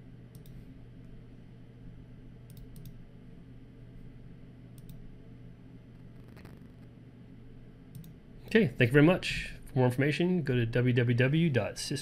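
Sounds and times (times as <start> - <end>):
steady low hum: 0.0 - 12.0
computer mouse clicks: 0.3 - 0.6, 2.5 - 3.0, 4.8 - 5.0, 7.9 - 8.2.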